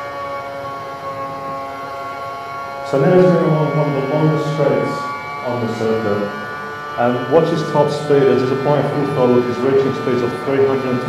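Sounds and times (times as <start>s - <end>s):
racing car engine over loudspeakers: 0.0s - 11.0s.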